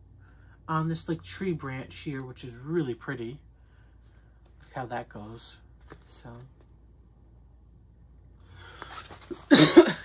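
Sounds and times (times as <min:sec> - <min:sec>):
steady low hum: 0:00.0 - 0:10.0
man coughing: 0:09.4 - 0:10.0.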